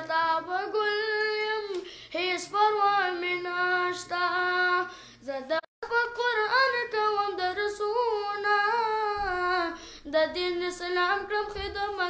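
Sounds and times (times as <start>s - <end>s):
boy singing unaccompanied: 0.0s - 12.0s.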